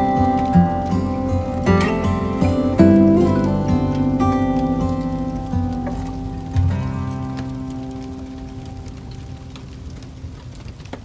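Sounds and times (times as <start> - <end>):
held chord of a song: 0.0 - 8.1
wood fire crackling: 0.0 - 11.0.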